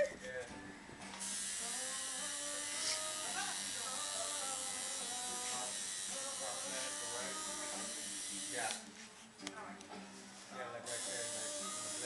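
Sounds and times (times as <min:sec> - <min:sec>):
tattoo machine buzzing: 0:01.2 - 0:08.8, 0:10.9 - 0:12.0.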